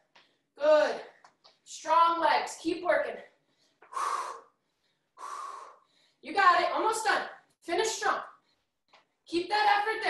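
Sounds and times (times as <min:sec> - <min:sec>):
woman breathing hard: 0:03.3 - 0:06.2.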